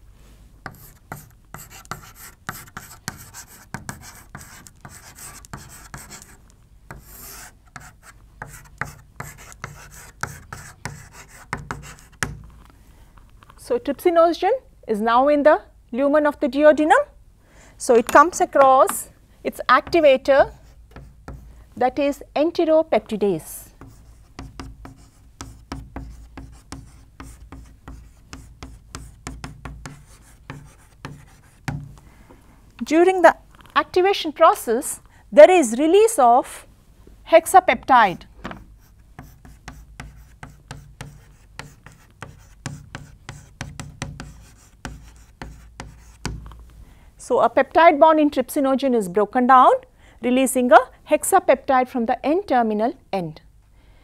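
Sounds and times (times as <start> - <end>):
chalk tapping and scratching: 0.6 - 12.7, 19.8 - 21.5, 23.7 - 32.0, 38.4 - 46.6.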